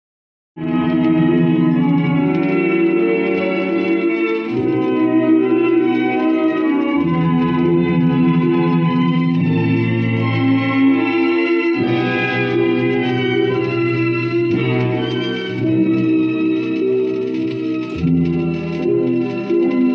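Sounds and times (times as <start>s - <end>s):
orchestral music on record player: 0.6s - 19.9s.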